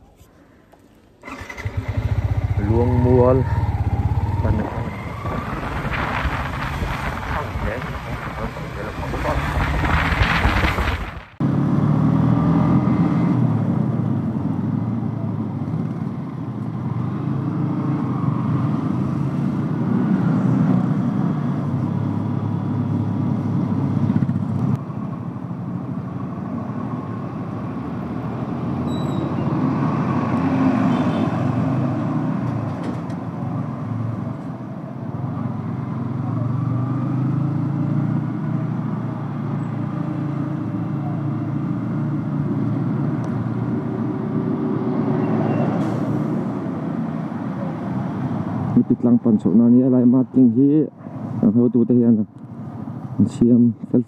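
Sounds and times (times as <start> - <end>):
road and wind noise: 0.0 - 54.0.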